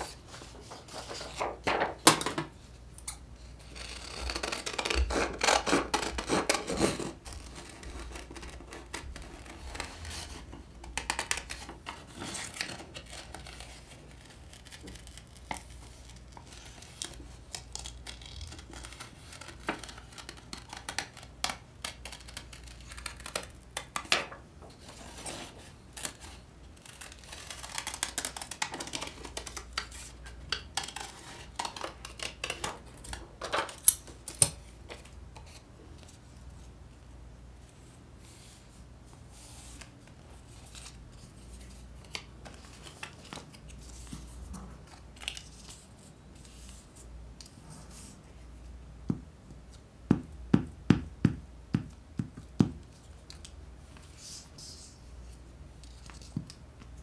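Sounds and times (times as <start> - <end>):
paper rustling and sliding: 0.0 - 2.1.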